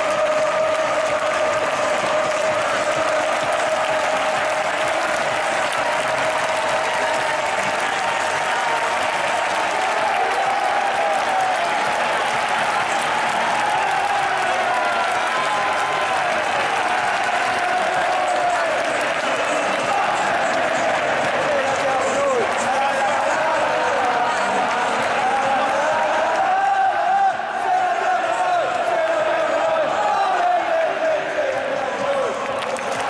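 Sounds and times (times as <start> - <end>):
crowd chanting: 0.0 - 33.0
stadium crowd applauding and cheering: 0.0 - 33.0.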